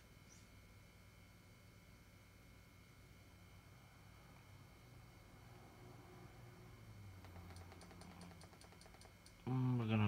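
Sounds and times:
low hum: 0.0 - 10.0
faint rapid clicks: 7.2 - 9.4.

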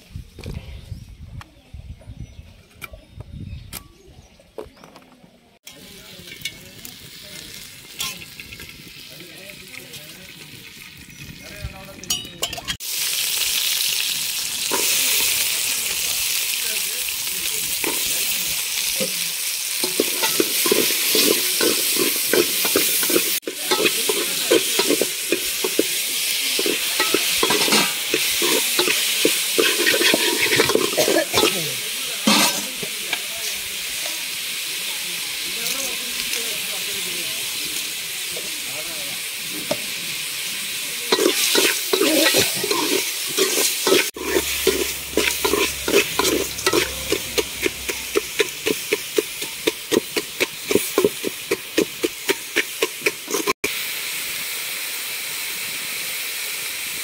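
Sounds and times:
vegetables sizzling in pot: 5.6 - 57.0
metal ladle scraping pot: 19.8 - 31.6, 32.2 - 33.0, 41.1 - 53.5.

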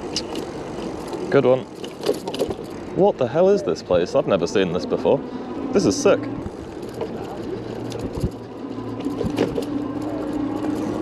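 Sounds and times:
bicycle knocks: 0.0 - 2.8, 6.5 - 11.0
steady low hum: 0.0 - 11.0.

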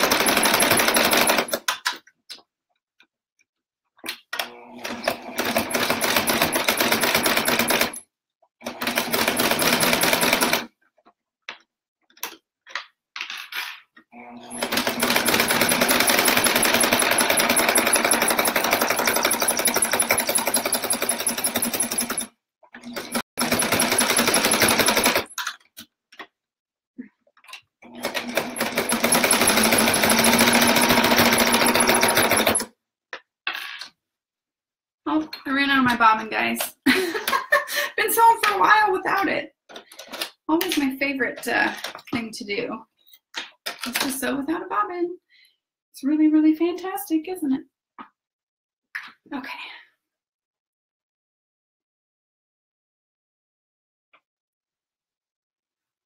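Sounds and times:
sewing machine stitching: 0.0 - 1.7, 4.4 - 8.0, 8.6 - 10.7, 14.1 - 25.5, 27.8 - 32.7.

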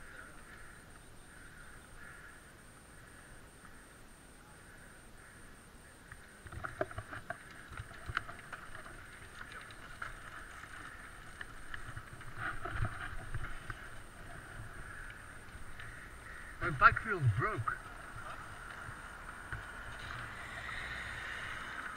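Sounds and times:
bike rattling: 6.7 - 16.6
bike tyres crunching on gravel: 7.3 - 21.8.

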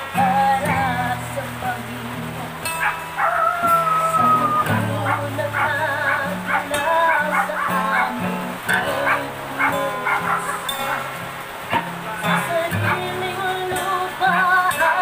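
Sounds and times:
woman singing: 0.0 - 11.3, 12.2 - 15.0
acoustic guitar: 0.0 - 15.0.

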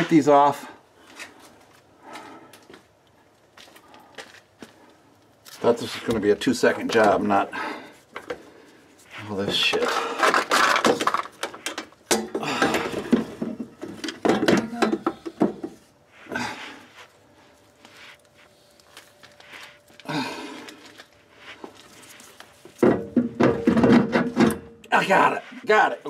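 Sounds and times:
effort noises: 6.9 - 22.9
metal clunks and scrapes: 9.2 - 15.9, 22.7 - 24.8.

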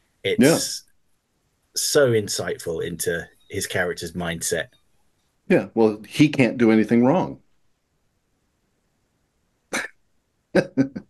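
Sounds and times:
man laughing: 10.6 - 11.0.

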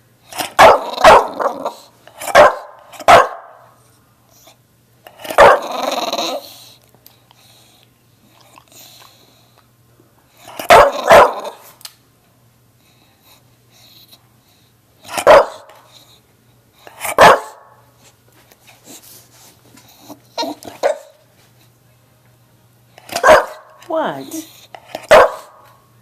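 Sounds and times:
dog barking: 0.4 - 3.6, 5.2 - 5.7, 10.5 - 11.6, 15.1 - 15.8, 17.0 - 17.8, 20.7 - 21.2, 23.1 - 23.8, 25.0 - 25.7.

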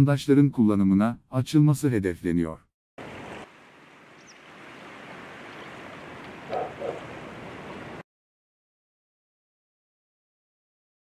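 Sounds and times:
outdoor ambient noise: 3.0 - 8.0.

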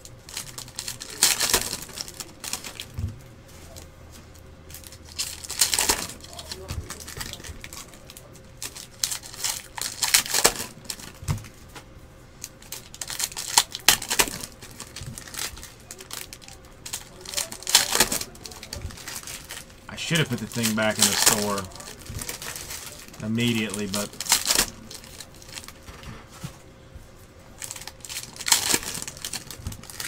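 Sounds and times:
foil wrappers crinkling and tearing: 0.0 - 11.8, 12.4 - 26.7, 27.5 - 30.0.

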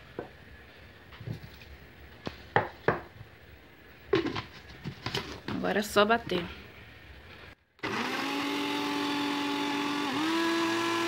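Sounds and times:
plastic kitchenware knocking: 4.1 - 5.6.

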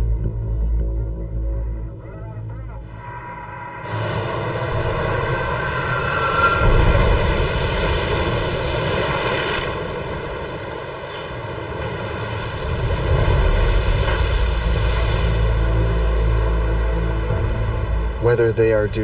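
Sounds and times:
storm wind: 2.9 - 16.2
waves breaking over ship's bow: 3.9 - 16.0.

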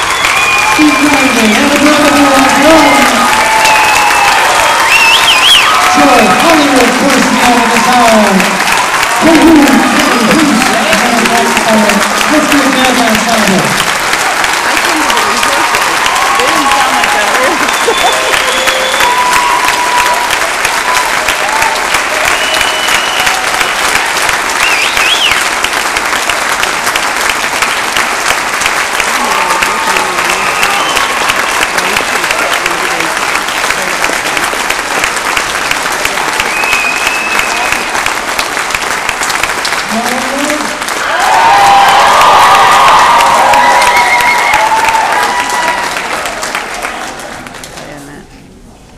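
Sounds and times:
crowd shouts and whoops: 0.0 - 10.3, 15.2 - 23.7, 29.2 - 31.5, 41.0 - 46.4
audience clapping: 0.0 - 48.3.

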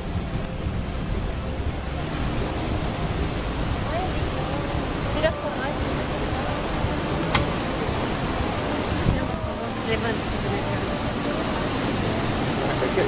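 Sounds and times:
boat motor rumbling: 0.0 - 13.0
faint voices: 0.0 - 13.0
wind on microphone: 0.0 - 13.0.

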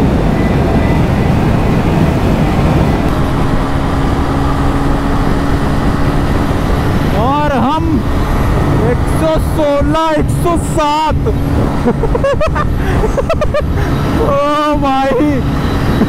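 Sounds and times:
motorcycle engine drone: 0.0 - 16.0
wind rushing over microphone: 0.0 - 16.0.

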